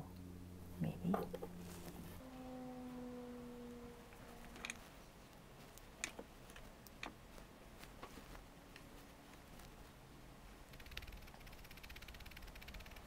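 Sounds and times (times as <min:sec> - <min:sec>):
soft pitched tone: 0:00.0 - 0:04.8.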